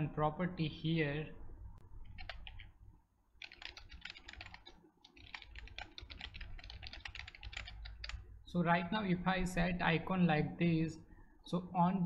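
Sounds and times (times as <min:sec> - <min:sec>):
typing on computer keyboard: 0:02.0 - 0:02.7, 0:03.4 - 0:08.2.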